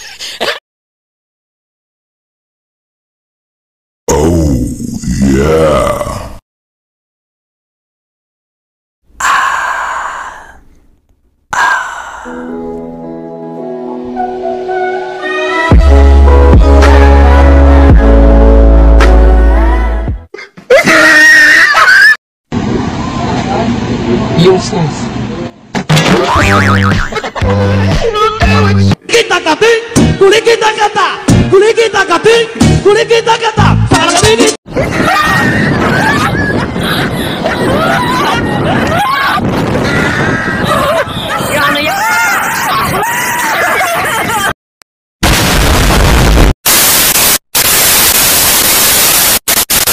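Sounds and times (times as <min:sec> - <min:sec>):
music with low bass note: 0:15.8 - 0:20.2, 0:26.4 - 0:29.0
wobbling boing sound effect: 0:26.1 - 0:27.2
tv static hiss: 0:45.2 - 0:49.9.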